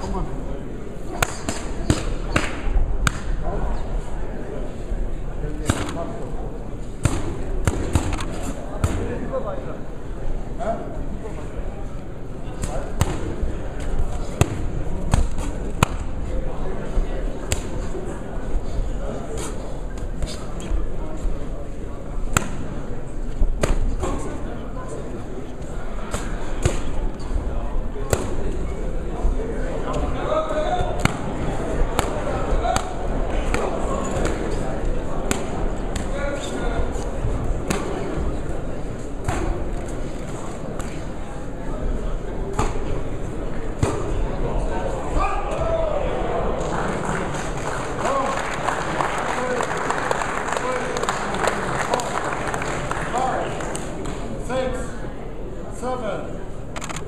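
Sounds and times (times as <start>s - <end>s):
crowd murmuring and shouting: 0.0s - 57.0s.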